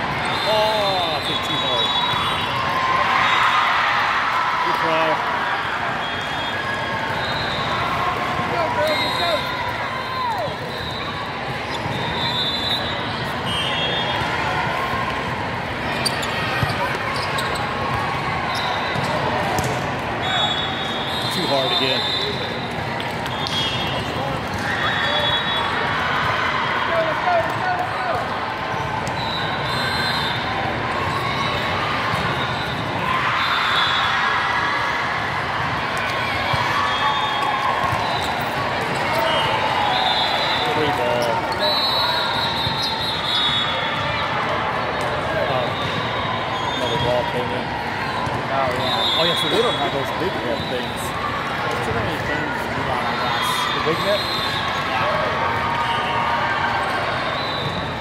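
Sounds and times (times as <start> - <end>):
murmur of crowd and voices: 0.0 - 58.0
shoes squeaking on court floor: 15.8 - 19.8, 37.8 - 39.6, 40.5 - 44.3.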